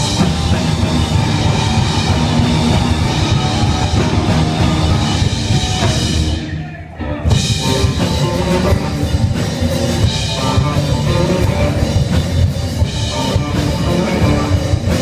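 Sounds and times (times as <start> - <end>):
live rock band playing: 0.0 - 15.0.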